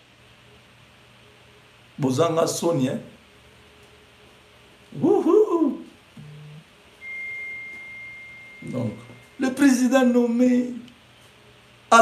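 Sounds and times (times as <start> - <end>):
short low hum: 5.0 - 9.4
high-pitched electronic beep: 7.0 - 9.4.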